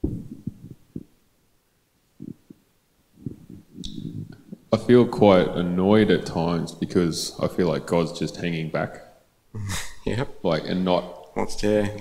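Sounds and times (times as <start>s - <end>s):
microphone handling thumps: 0.0s - 1.2s, 3.2s - 4.7s.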